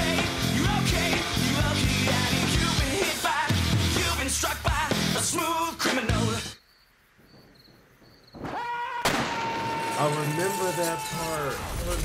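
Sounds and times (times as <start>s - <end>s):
rock song: 0.0s - 6.6s.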